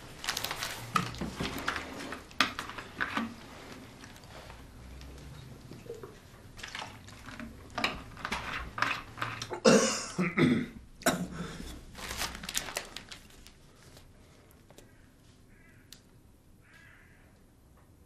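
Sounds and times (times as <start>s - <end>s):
newspaper rustling: 0.0s - 5.2s, 11.7s - 14.9s.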